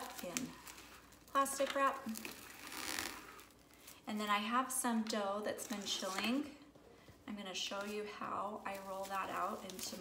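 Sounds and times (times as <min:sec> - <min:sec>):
cling wrap rustling: 0:00.0 - 0:04.1, 0:07.7 - 0:10.0.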